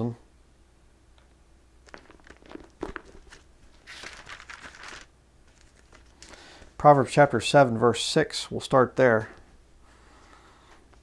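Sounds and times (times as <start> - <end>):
paper pages rustling: 1.9 - 6.7.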